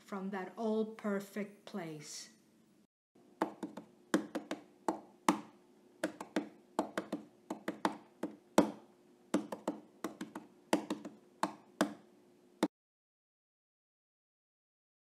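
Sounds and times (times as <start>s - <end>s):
percussion taps and knocks: 3.4s - 12.0s.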